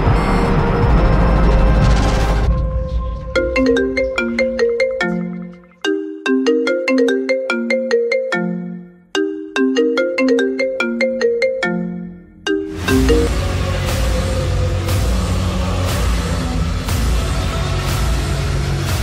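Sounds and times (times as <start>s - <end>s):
ringtone melody: 3.4s - 13.7s.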